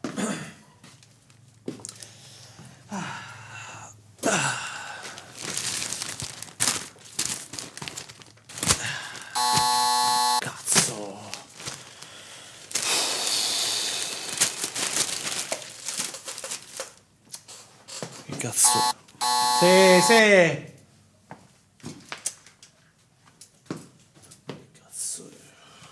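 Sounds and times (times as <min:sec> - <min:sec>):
flat electronic buzzer tone: 0:09.4 - 0:10.4, 0:18.6 - 0:20.4.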